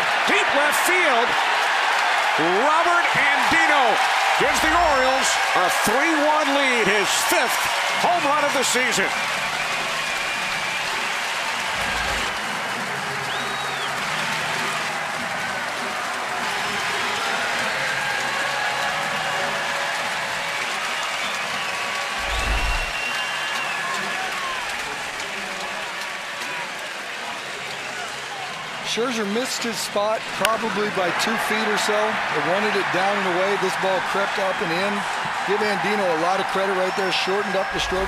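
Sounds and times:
crowd cheering and clapping: 0.0s - 38.0s.

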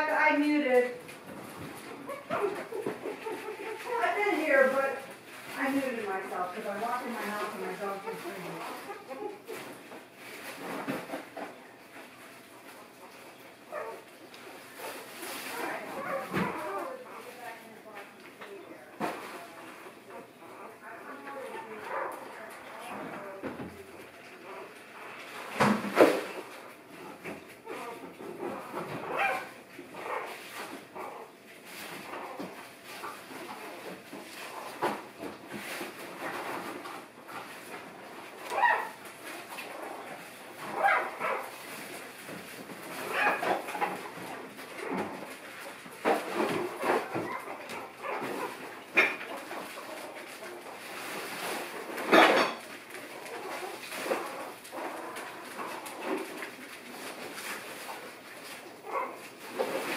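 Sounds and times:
puppies whimpering and yipping: 1.9s - 4.2s, 27.6s - 30.4s, 46.8s - 50.2s.

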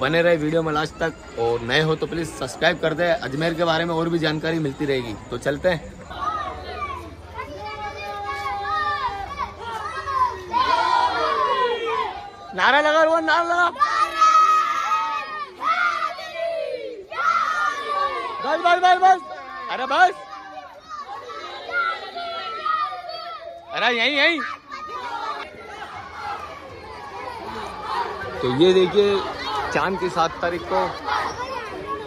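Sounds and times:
children shouting: 0.0s - 32.0s.

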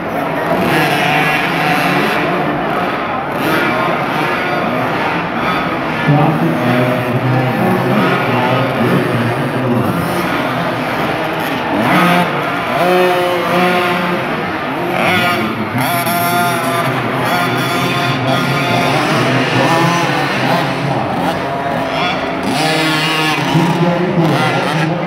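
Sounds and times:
motocross bikes revving: 0.0s - 25.0s.

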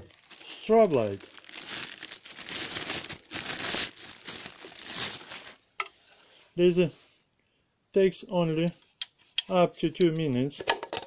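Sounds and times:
plastic bag crinkling: 0.0s - 5.8s.

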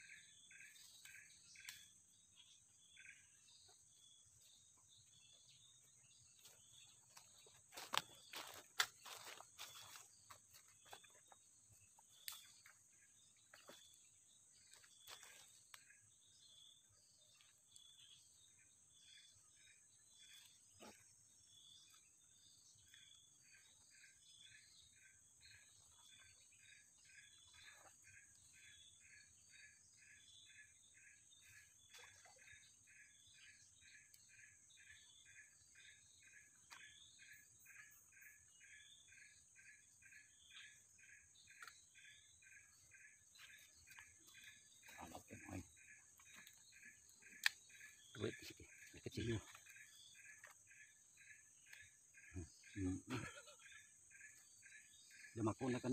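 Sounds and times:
insect chirps: 0.0s - 55.9s.

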